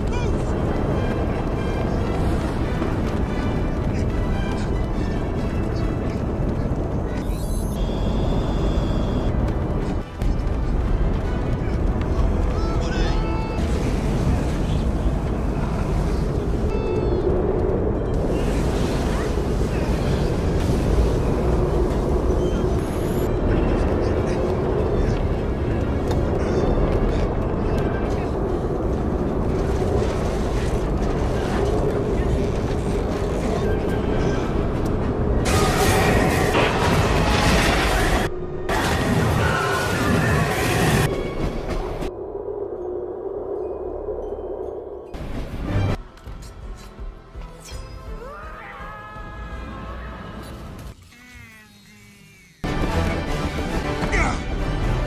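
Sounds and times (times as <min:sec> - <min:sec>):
continuous low rumble: 0:00.0 - 0:47.6
film music: 0:00.0 - 0:51.0, 0:52.6 - 0:55.0.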